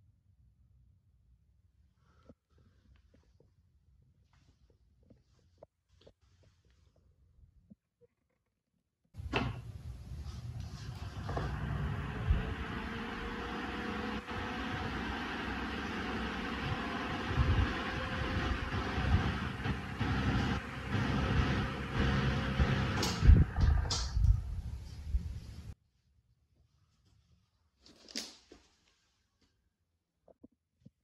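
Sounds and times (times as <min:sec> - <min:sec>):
electric fan running: 0:09.2 - 0:25.7.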